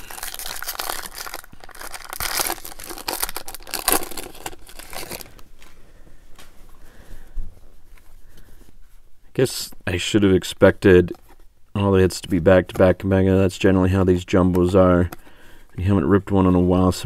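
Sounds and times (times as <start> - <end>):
foil wrapper tearing and crinkling: 0.0 - 5.4.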